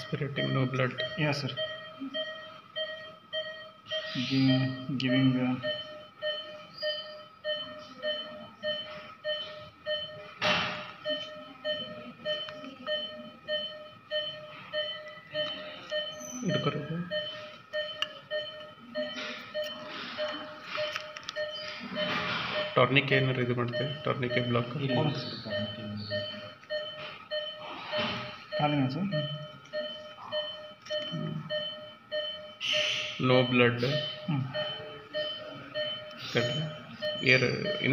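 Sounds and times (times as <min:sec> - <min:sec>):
medical equipment beeping: 0:00.0 - 0:37.9.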